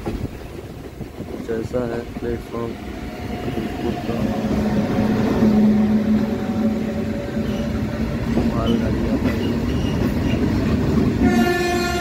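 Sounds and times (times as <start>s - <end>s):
freight train passing: 0.0s - 12.0s.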